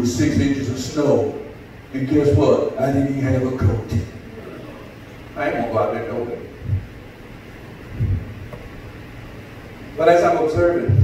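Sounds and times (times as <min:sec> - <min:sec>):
low room noise: 0:00.0 - 0:11.0
low muffled thump: 0:08.0 - 0:08.6.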